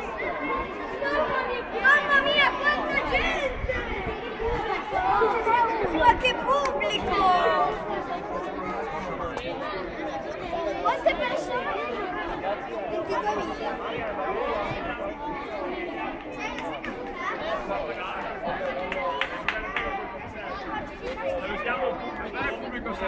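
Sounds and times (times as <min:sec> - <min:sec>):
children chattering: 0:00.0 - 0:23.0.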